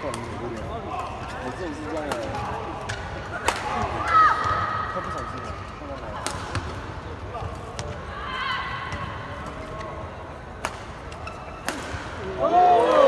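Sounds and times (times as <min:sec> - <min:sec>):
murmur of spectators: 0:00.0 - 0:13.0
rackets striking shuttlecock: 0:10.5 - 0:12.3.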